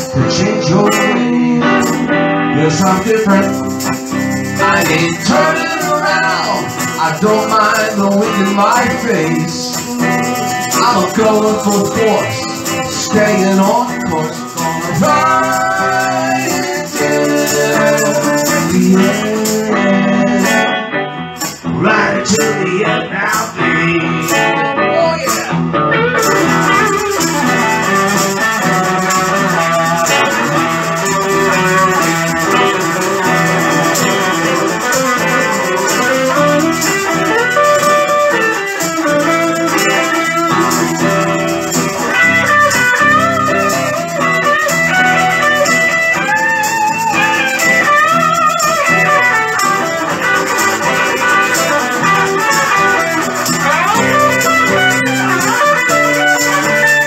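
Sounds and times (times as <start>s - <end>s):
electric guitar lead: 0.0s - 57.0s
steady accompaniment: 25.3s - 57.0s.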